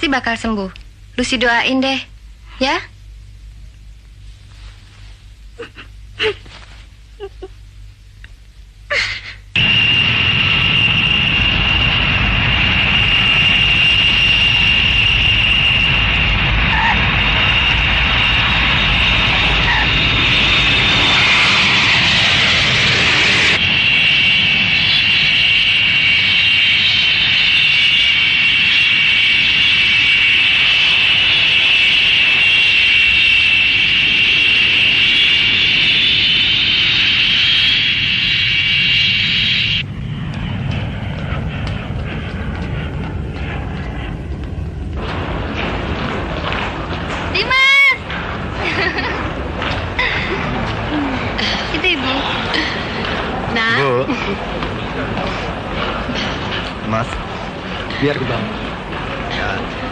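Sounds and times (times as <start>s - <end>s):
taxiing jet multi-tone whine: 8.8s - 59.9s
jet engines whining: 8.9s - 59.9s
rushing noise: 9.6s - 59.9s.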